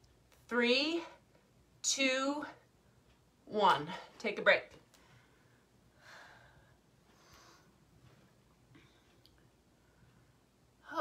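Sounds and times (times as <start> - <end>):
person breathing faintly: 5.0 - 10.4.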